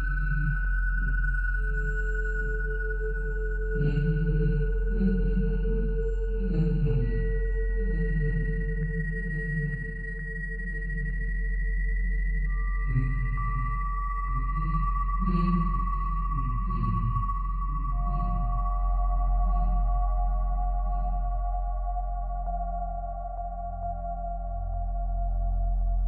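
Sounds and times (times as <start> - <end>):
low drone: 0.0 - 26.0
sustained ringing tones: 0.0 - 26.0.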